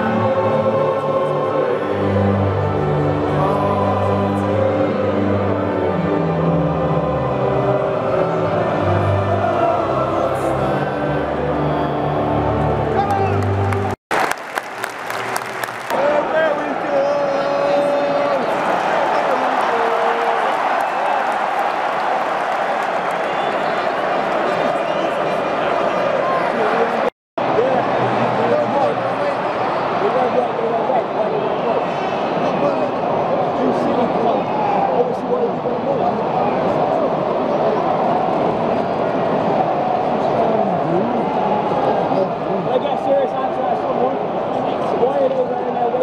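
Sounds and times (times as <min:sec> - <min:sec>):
music: 0:00.0 - 0:14.0
crowd chanting: 0:00.0 - 0:14.3, 0:15.1 - 0:42.8
crowd voices: 0:00.0 - 0:46.0
crowd clapping: 0:12.9 - 0:16.8, 0:18.3 - 0:25.8.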